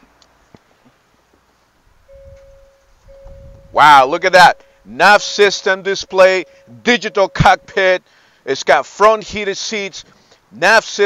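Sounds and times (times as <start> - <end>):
electronic dashboard chime: 2.1 - 8.0.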